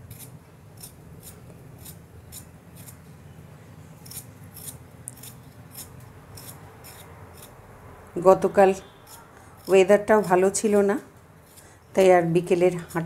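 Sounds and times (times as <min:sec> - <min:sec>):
peeler scraping potato skin: 0:00.0 - 0:03.1, 0:04.0 - 0:07.6, 0:08.2 - 0:13.0.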